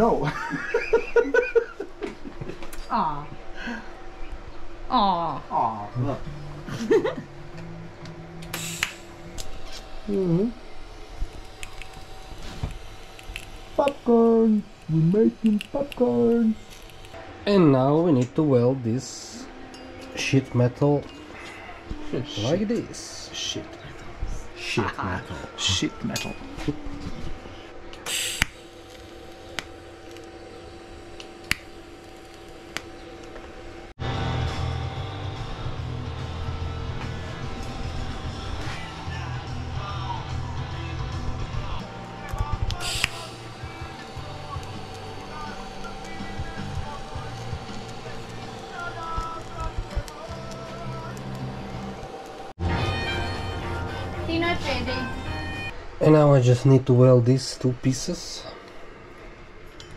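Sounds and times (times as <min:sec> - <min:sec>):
welding arc hum and hiss: 0:00.0 - 0:56.2
sharp clicks: 0:08.4 - 0:09.5
welding crackles: 0:08.4 - 0:17.2, 0:27.9 - 0:52.7
rock music: 0:33.7 - 0:55.7.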